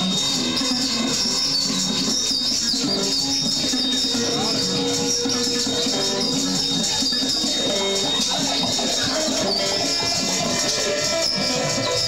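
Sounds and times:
high whine: 0.0 - 12.0
live band with guitar: 0.0 - 12.0.

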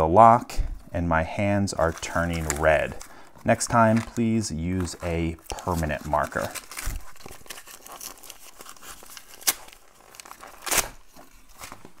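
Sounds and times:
tape and paper tearing: 3.7 - 11.9.

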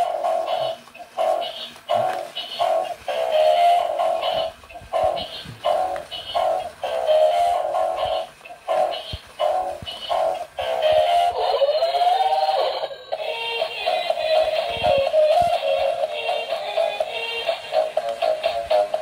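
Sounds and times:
tinny electronic song from toy speaker: 0.0 - 19.0.

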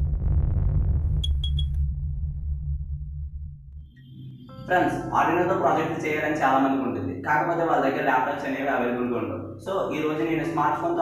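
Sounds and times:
deep bass drone: 0.0 - 7.8.

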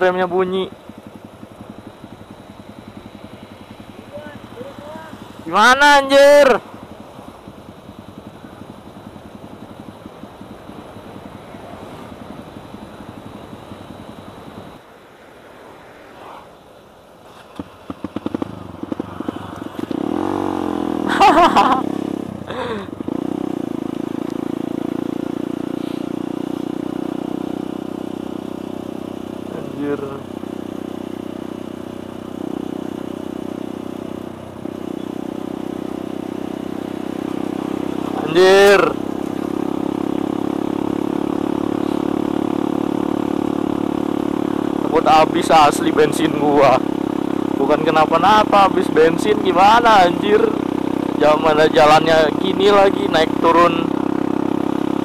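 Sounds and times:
motorcycle engine running: 0.0 - 14.8, 17.4 - 55.0.

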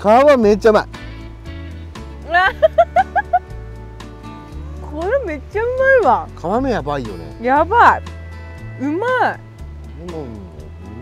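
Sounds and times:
background music: 0.0 - 11.0
person laughing: 2.3 - 3.5.

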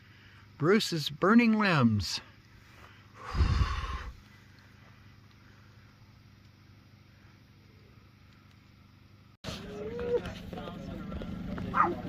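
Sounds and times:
outdoor background hiss: 0.0 - 11.9
air puff on microphone: 3.2 - 4.2.

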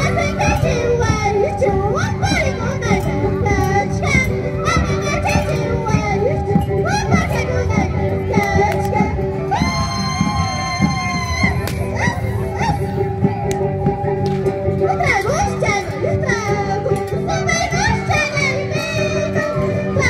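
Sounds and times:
high-pitched group singing: 0.0 - 13.6, 14.7 - 20.0.

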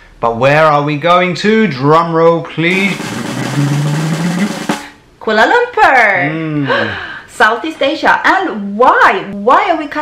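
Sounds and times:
drum roll: 2.7 - 5.0.

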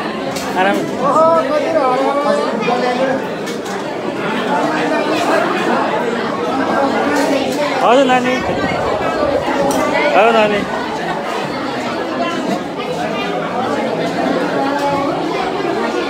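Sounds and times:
babble of overlapping conversation: 0.0 - 16.0
louder voices rising in pitch: 7.7 - 11.4.

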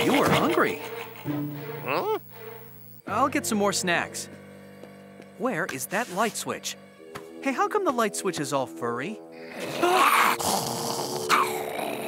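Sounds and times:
steady held tones: 1.2 - 3.1
cartoon monster growling: 9.5 - 12.0.

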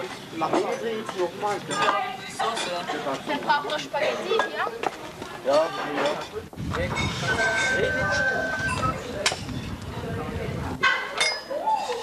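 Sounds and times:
teenagers chattering: 0.0 - 12.0
clinks of spoons and dishes: 10.8 - 12.0.

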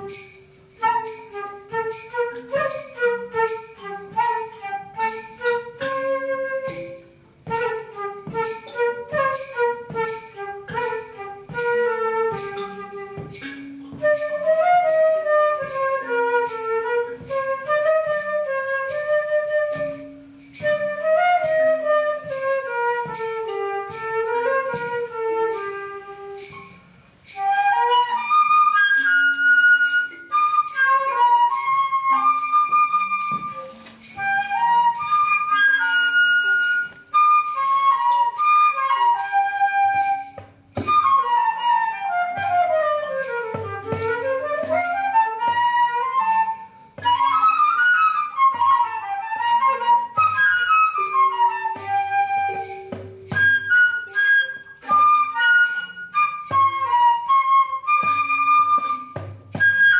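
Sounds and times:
flute melody: 0.0 - 59.9
high percussion beat: 0.0 - 59.9.

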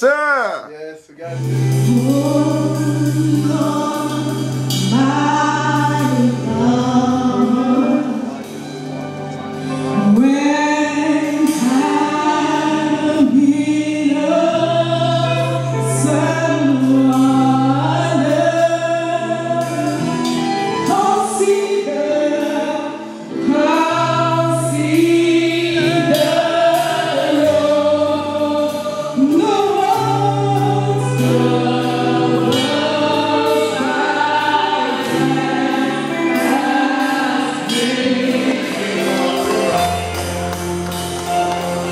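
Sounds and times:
group gospel singing: 1.4 - 41.9.

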